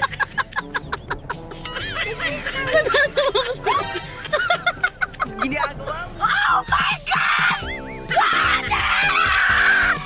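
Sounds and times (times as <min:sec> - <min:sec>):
girl giggling: 0:00.0 - 0:05.5
background music: 0:00.0 - 0:10.0.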